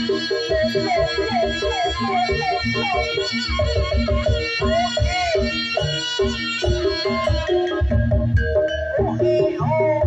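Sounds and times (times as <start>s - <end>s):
hand drum beats: 0.0s - 10.0s
wavering lead melody: 0.0s - 10.0s.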